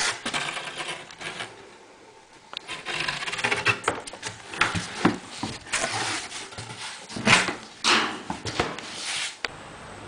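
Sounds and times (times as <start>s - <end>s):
cardboard scraping on cardboard: 0.0s - 1.6s, 2.6s - 9.4s.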